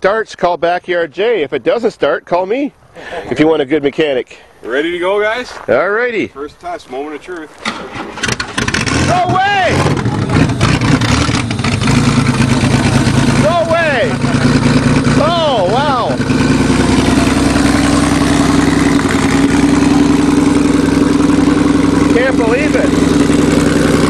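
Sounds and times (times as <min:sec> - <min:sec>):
car engine running: 0:08.2 - 0:24.0.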